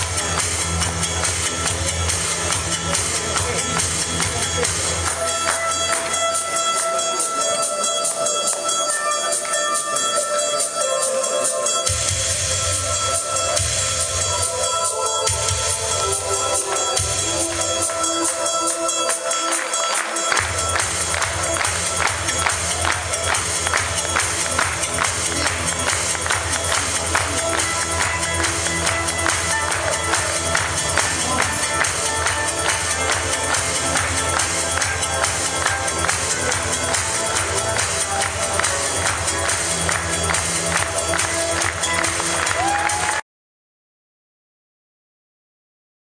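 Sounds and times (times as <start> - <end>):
music with driving beat: 0.0 - 43.2.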